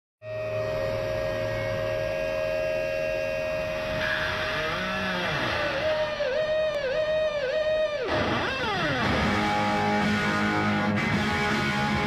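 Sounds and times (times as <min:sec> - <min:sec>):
low amplifier hum: 0:00.2 - 0:07.3
electric guitar feedback whine: 0:00.2 - 0:12.0
guitar bent notes: 0:00.3 - 0:12.0.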